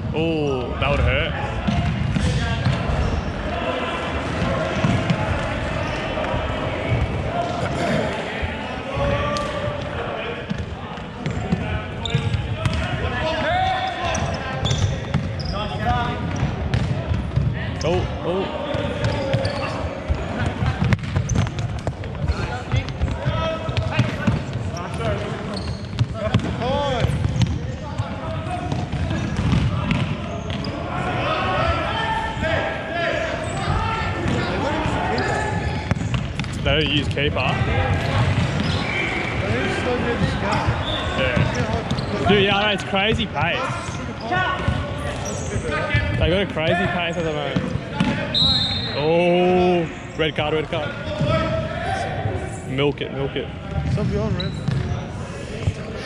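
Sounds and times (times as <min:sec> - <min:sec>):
players shouting: 0:00.4 - 0:21.0, 0:28.0 - 0:52.7.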